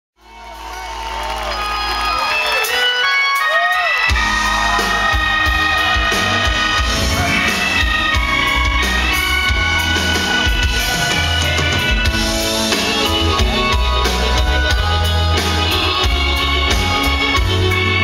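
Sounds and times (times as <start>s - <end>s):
live band playing: 0.2s - 18.0s
wavering melodic notes: 1.4s - 18.0s
bass and drums: 3.5s - 18.0s.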